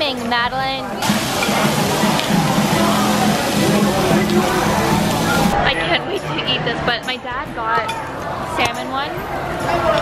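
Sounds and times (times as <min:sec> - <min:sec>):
rice sizzling on hot iron plate: 0:01.0 - 0:05.6
music playing: 0:01.0 - 0:06.6.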